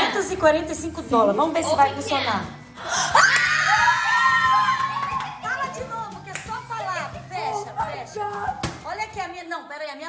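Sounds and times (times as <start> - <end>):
background music: 0.0 - 10.0
women exclaiming and cheering: 3.0 - 9.5.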